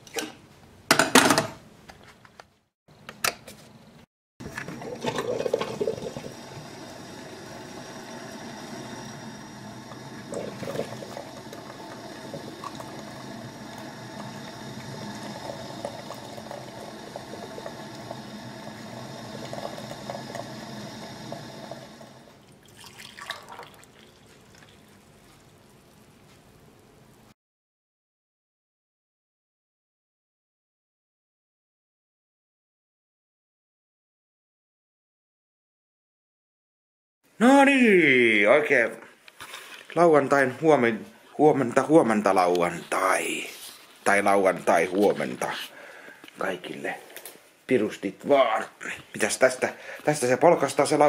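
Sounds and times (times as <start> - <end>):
coffee maker bubbling: 4.4 - 26.3.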